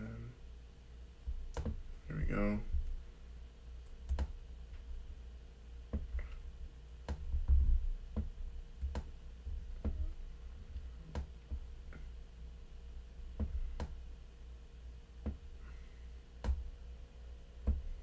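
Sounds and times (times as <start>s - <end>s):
computer mouse clicks: 3.8s - 4.4s
dull thump: 13.4s - 14.0s, 17.6s - 18.0s.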